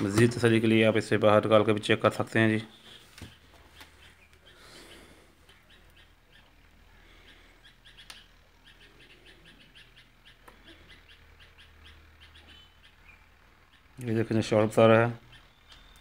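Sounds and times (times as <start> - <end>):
birds chirping: 0.0 - 16.0
low steady hum: 0.0 - 16.0.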